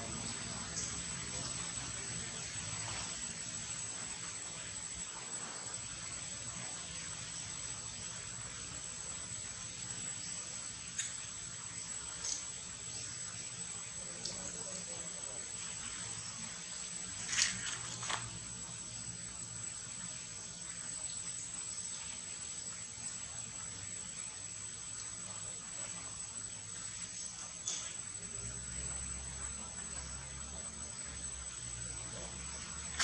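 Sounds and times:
insects droning: 0.0 - 33.0.

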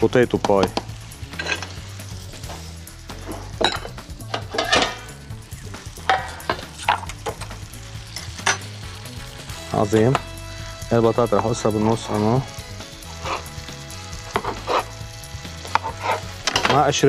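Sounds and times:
food sizzling in a pot: 0.0 - 17.0
utensils clinking on pans: 0.4 - 1.8, 3.2 - 5.2, 6.0 - 8.8, 14.3 - 14.9, 15.6 - 17.0.

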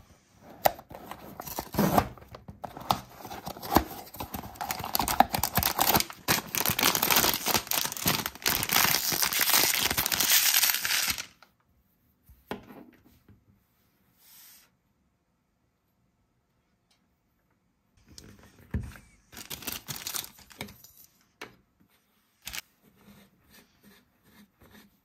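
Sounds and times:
foil pouch tearing and crinkling: 4.5 - 11.4, 19.4 - 20.6.

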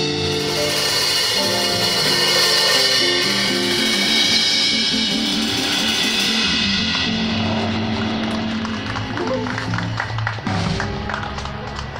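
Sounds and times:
cymbal wash: 0.0 - 7.9
live band playing: 0.0 - 11.9.

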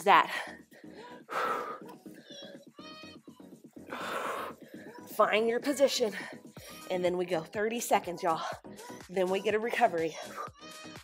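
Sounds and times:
workout music: 0.0 - 11.0.

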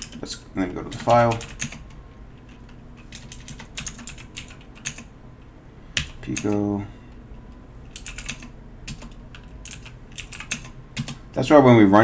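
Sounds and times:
keyboard typing clicks: 0.9 - 5.1, 7.9 - 11.2.

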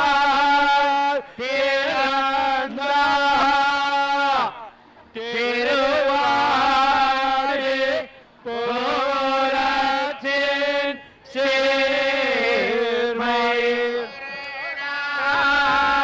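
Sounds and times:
person chanting: 5.3 - 16.0.

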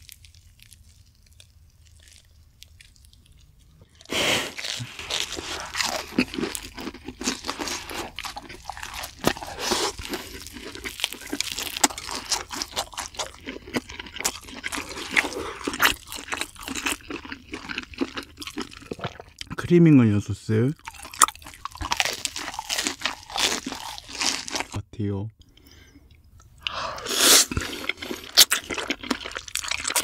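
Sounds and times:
crunchy fried bread chewing: 0.0 - 19.6, 20.8 - 24.8, 25.4 - 30.0.

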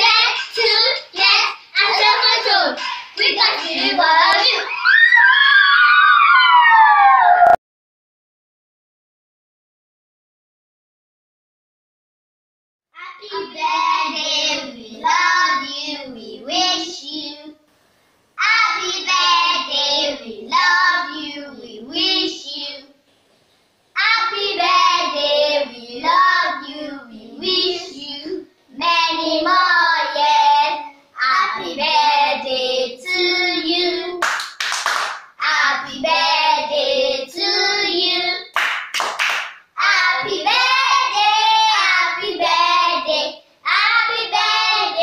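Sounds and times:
children singing: 1.8 - 5.0, 35.4 - 38.5, 39.8 - 45.0
hand claps: 34.2 - 35.3, 38.5 - 39.7.

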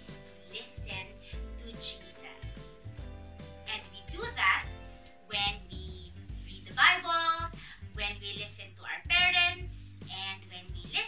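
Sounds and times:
woman speaking: 0.0 - 2.6, 3.7 - 11.0
soft background music: 0.0 - 11.0.

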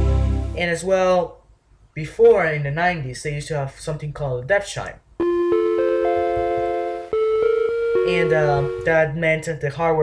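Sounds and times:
computer chime rising arpeggio: 5.2 - 9.0.

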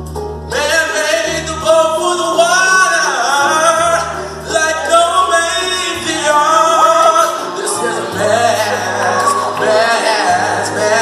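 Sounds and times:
held low bass notes: 0.0 - 11.0
man singing into a microphone: 0.5 - 11.0.

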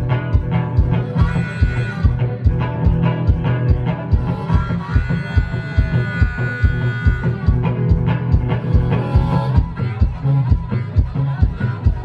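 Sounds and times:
acoustic guitar boogie: 0.0 - 12.0
stomped beat: 0.0 - 12.0.

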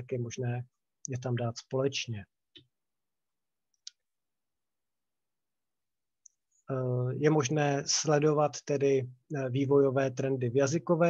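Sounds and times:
man talking: 0.0 - 2.3, 6.7 - 11.0.

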